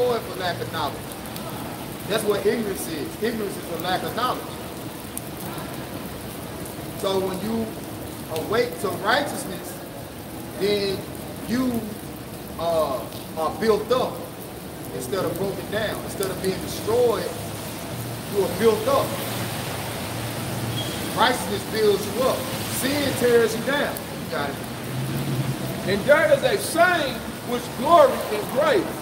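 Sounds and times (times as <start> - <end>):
rain on wet pavement: 0.0 - 29.0.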